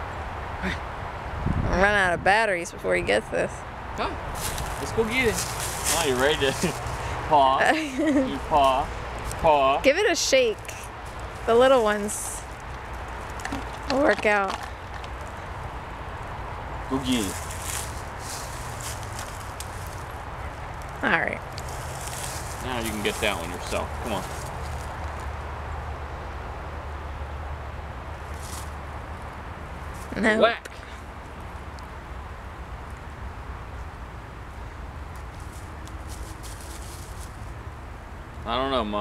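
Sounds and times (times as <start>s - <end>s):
dry leaves crackling underfoot: 4.3s - 7.2s, 8.0s - 9.6s, 10.4s - 15.9s, 16.9s - 25.5s, 28.2s - 29.0s, 35.1s - 37.8s
scattered ticks: 12.4s - 15.7s.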